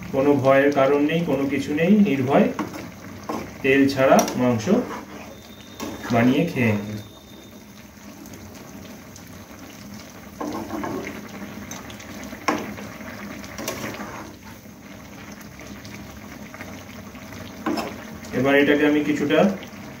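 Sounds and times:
gravy bubbling in a pan: 0:00.0 - 0:20.0
spatula stirring and scraping: 0:02.6 - 0:03.6, 0:04.2 - 0:06.3, 0:10.4 - 0:11.2, 0:13.5 - 0:14.6.

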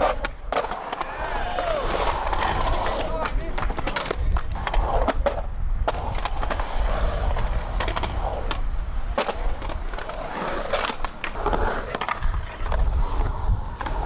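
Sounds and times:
skateboard clacking on concrete: 0:00.0 - 0:14.0
skateboard wheels rolling on concrete: 0:00.0 - 0:14.0.

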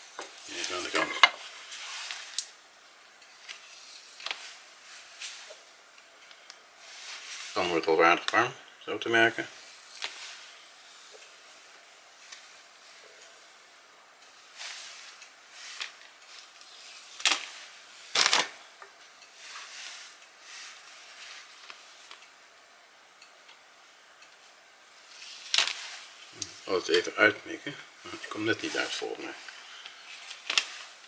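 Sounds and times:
sharp fat crackles: 0:09.4 - 0:13.6, 0:14.3 - 0:18.7, 0:24.4 - 0:31.0
bacon sizzling in pan: 0:09.5 - 0:13.0.

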